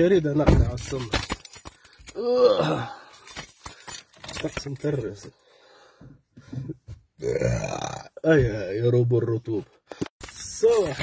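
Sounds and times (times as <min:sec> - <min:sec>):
man belching: 0:02.2 - 0:03.0, 0:07.2 - 0:08.2.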